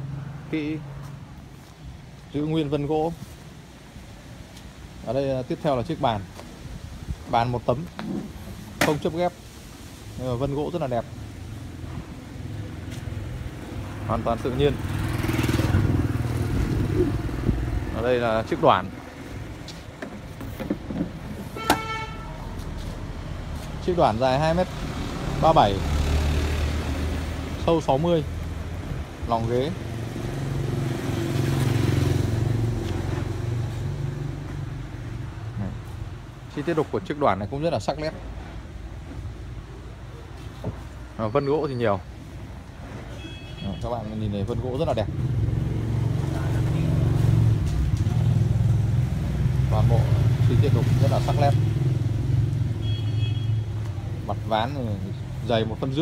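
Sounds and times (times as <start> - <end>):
low street background: 0.0 - 56.0
vehicle engine rumbling: 10.2 - 43.3
vehicle horn beep: 21.6 - 22.4, 43.1 - 43.8, 52.8 - 53.7.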